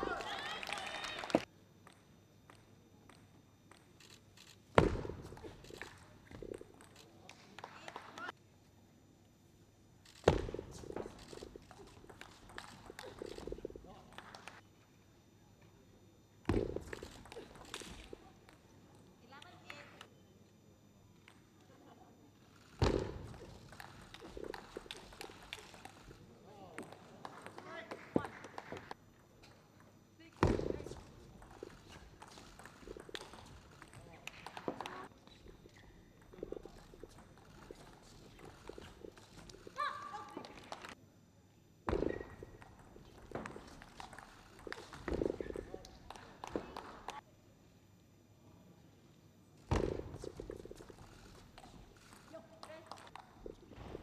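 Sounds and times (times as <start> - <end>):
table tennis ball clicking: 11.0 - 14.6, 29.8 - 39.7, 42.1 - 47.2.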